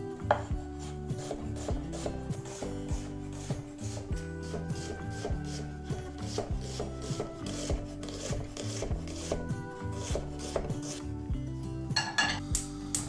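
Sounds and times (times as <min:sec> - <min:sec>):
soft background music: 0:00.0 - 0:13.0
knife chopping on wooden board: 0:00.3 - 0:11.0.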